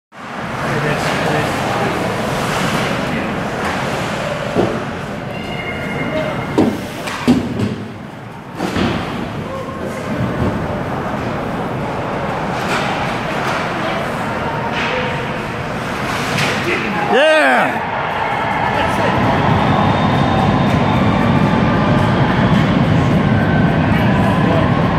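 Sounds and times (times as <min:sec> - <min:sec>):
arena noise: 0:00.2 - 0:24.9
voices: 0:12.4 - 0:19.6.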